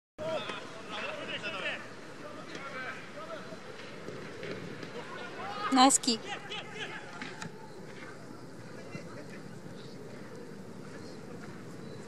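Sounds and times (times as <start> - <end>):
outdoor background noise: 0.2 - 12.0.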